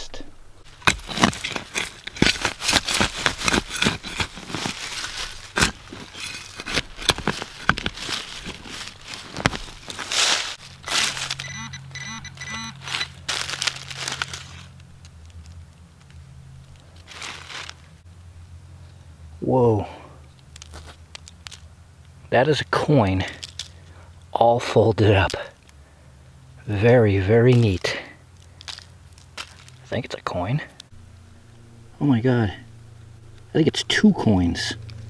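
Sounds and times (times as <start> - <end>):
low steady hum: 0.0 - 35.0
digger crunching into soil: 0.6 - 14.8
quick electronic beeps: 11.4 - 13.2.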